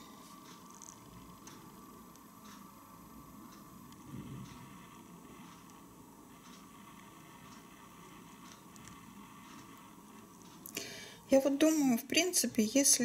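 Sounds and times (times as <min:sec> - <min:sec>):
low hiss: 0:00.0 - 0:13.0.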